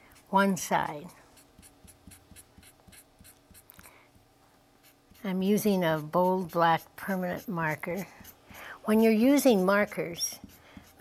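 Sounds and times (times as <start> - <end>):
marker scratching on fabric: 0.2 - 3.8, 4.8 - 11.0.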